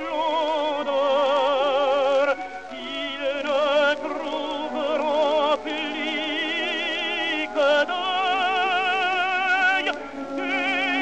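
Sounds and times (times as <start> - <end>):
musical accompaniment: 0.0 - 11.0
operatic tenor singing: 0.0 - 11.0.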